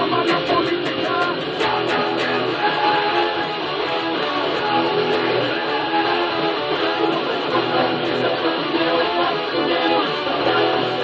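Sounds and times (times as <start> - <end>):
electric guitar rock riff: 0.0 - 11.0
rock backing track with drums: 0.0 - 11.0.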